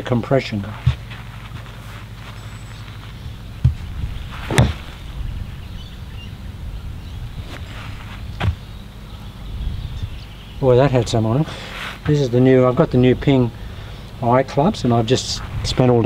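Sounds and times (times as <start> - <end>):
low outdoor hum: 0.0 - 16.0
golf club striking ball: 3.6 - 5.2.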